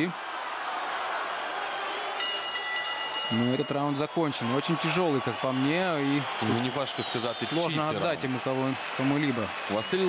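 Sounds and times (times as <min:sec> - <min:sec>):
arena crowd noise: 0:00.0 - 0:10.0
ring bell ringing: 0:02.2 - 0:04.2.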